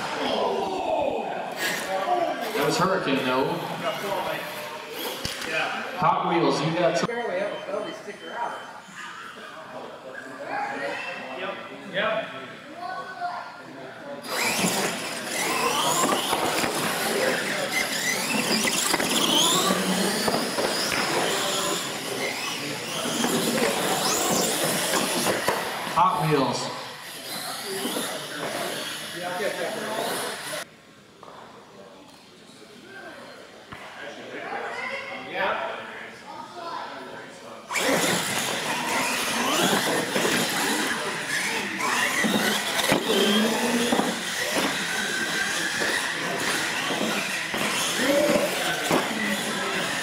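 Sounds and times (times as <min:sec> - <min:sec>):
voices in a hall: 0:00.0 - 0:50.0
electric motors whining: 0:14.2 - 0:26.2, 0:26.8 - 0:30.6, 0:37.7 - 0:50.0.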